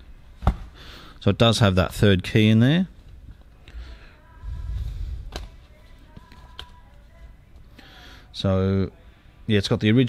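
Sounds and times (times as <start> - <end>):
low rumbling swell: 4.4 - 5.3.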